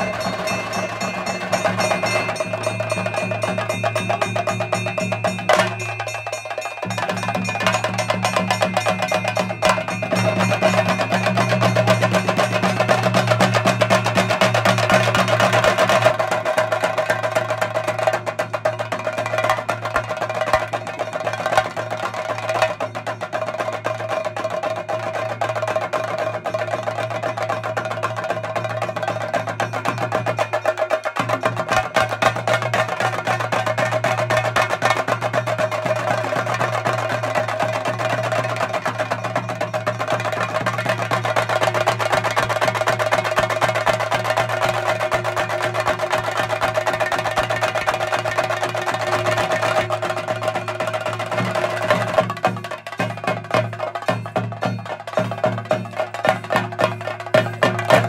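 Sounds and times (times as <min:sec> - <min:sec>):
drum ensemble stick roll: 0:00.0 - 0:58.0.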